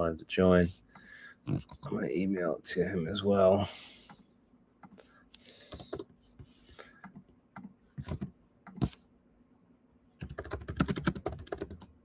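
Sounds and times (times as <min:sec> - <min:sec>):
computer keyboard typing: 0:05.6 - 0:06.1, 0:07.0 - 0:08.9, 0:10.2 - 0:11.9.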